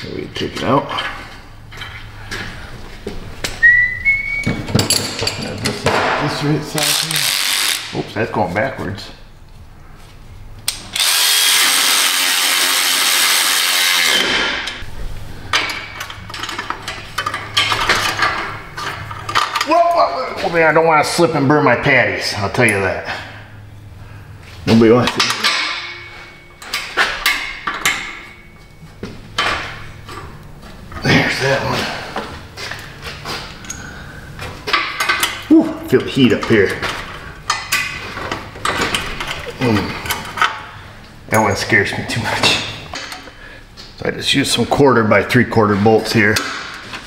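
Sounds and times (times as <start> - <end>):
steady low hum: 0.0 - 13.3, 14.1 - 47.0
tools clicking and knocking: 4.4 - 6.2, 25.0 - 28.3, 34.7 - 40.7, 42.4 - 43.3
power tool running: 10.8 - 14.8.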